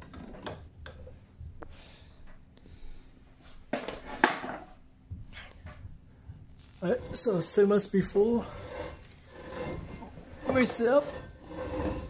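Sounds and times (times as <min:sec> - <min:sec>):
rustling scrape: 0:06.6 - 0:12.0.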